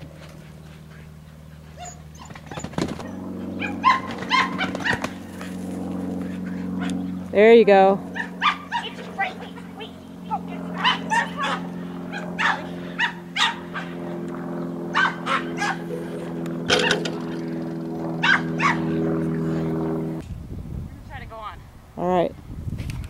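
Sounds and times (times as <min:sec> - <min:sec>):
steady low hum: 0:00.0 - 0:23.0
dog barking excitedly: 0:01.7 - 0:05.2, 0:08.1 - 0:14.0, 0:14.9 - 0:15.9, 0:18.2 - 0:19.0.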